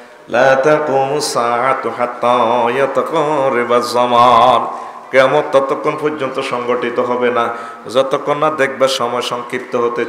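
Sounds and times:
man chanting through microphones: 0.2s - 10.0s.

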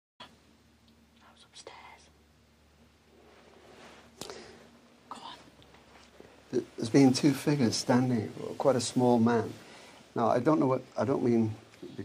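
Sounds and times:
low steady hum: 0.2s - 12.0s
person whispering: 1.2s - 2.2s, 5.1s - 5.5s.

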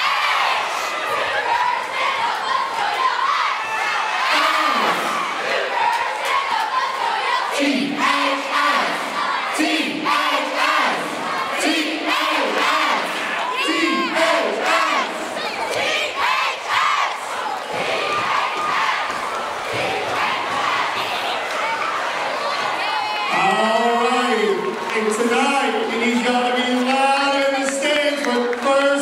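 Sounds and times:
crowd cheering and yelling: 0.0s - 29.0s
crowd shouting a rhythmic cheer: 0.0s - 29.0s.

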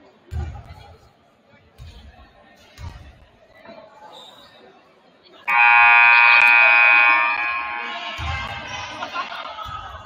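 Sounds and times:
scoreboard buzzer: 5.5s - 8.4s.

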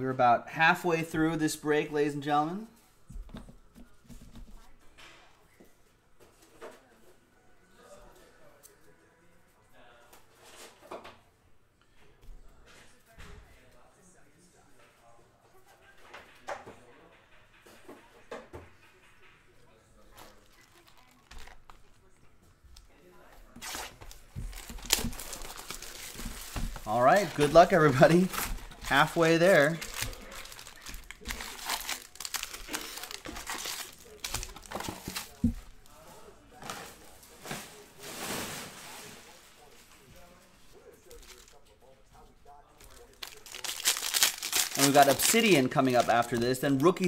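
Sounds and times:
plastic wrap crinkling and tearing: 20.2s - 22.0s, 23.5s - 35.8s, 42.8s - 47.0s.

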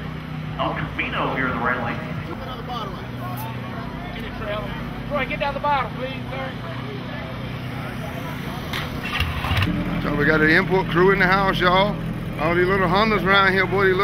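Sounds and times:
vehicle engine idling: 0.0s - 14.0s
people talking: 0.6s - 9.1s, 10.0s - 14.0s.

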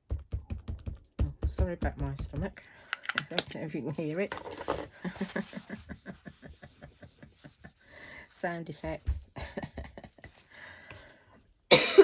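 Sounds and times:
woman coughing: 11.7s - 12.0s.

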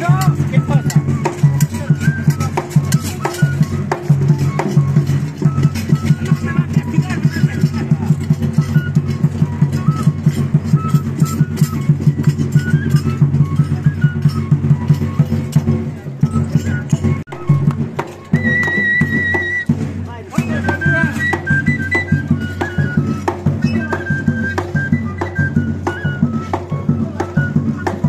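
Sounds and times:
high flute melody: 0.0s - 28.0s.

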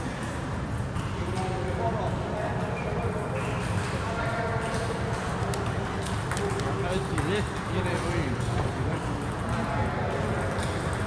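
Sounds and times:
table tennis balls clicking: 0.2s - 11.0s
people talking: 1.0s - 11.0s.

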